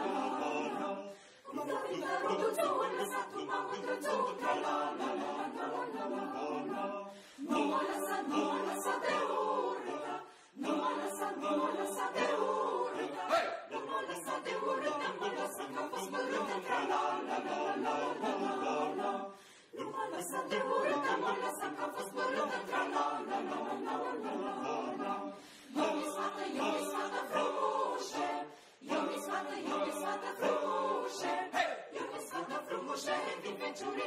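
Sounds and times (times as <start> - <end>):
mixed choir singing a cappella: 0.0 - 34.0.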